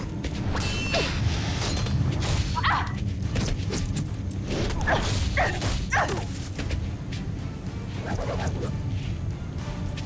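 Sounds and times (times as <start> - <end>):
background score music: 0.0 - 10.0.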